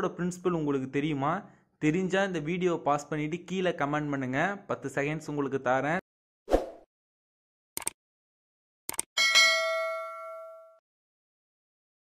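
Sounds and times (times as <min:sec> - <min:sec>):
notification bell ding: 0:09.2 - 0:10.8.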